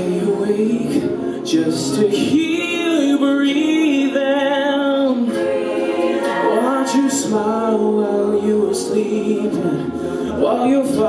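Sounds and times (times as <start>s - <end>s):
a cappella group singing chords: 0.0s - 11.0s.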